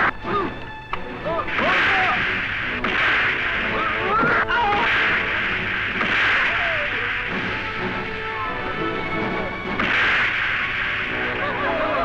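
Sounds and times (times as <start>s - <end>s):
dramatic background music: 0.0s - 12.0s
loud fight blows: 1.4s - 8.1s, 9.7s - 12.0s.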